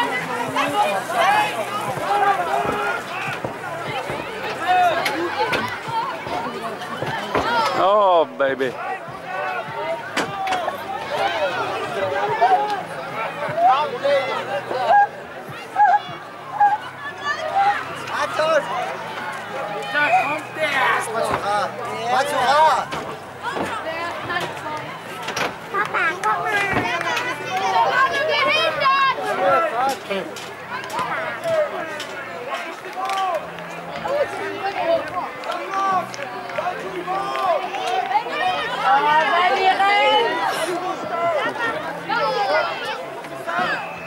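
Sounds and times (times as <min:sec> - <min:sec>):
children shouting and chattering: 0:00.0 - 0:44.0.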